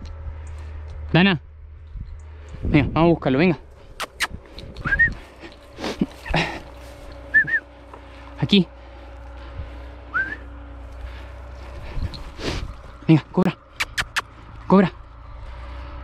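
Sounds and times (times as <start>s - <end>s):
short rising whistles: 4.0s - 5.2s, 7.3s - 7.7s, 10.1s - 10.6s.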